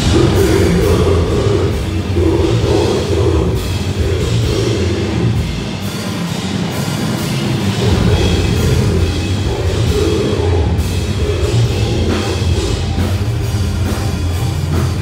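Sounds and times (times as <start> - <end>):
death metal band playing live: 0.0 - 15.0.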